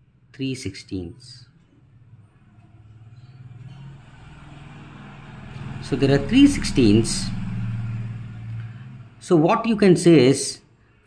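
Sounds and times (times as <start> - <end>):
vehicle engine humming: 2.0 - 9.2.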